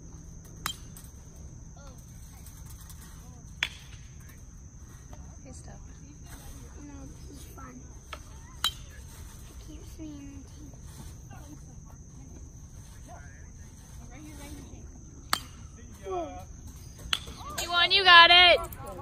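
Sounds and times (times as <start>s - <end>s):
crickets droning: 0.0s - 19.0s
faint distant voices: 1.7s - 19.0s
baseball bat hitting ball: 3.6s - 4.1s, 15.3s - 15.7s, 17.0s - 17.8s.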